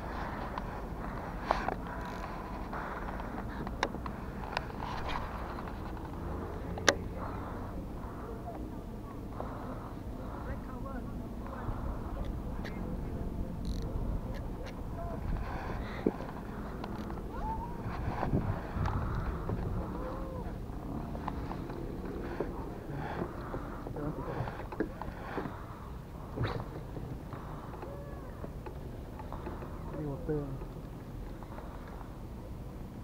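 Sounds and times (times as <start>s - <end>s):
wind on microphone: 17.2s - 20.7s.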